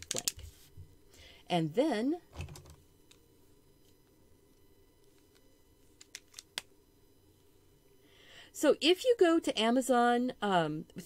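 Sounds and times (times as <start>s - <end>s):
art supplies clicking: 0.0s - 0.4s.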